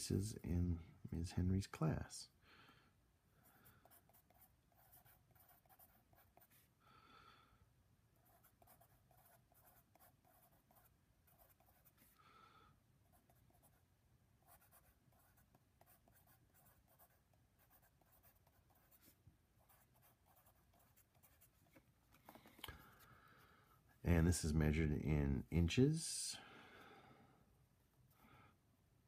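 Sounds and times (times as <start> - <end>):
pencil scratching on paper: 3.4 - 6.7, 8.2 - 12.1, 13.1 - 13.8, 14.4 - 21.8.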